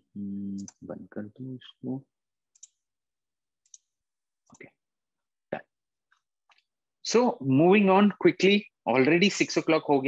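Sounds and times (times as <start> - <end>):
computer mouse clicks: 2.5 - 2.9, 3.6 - 4.8.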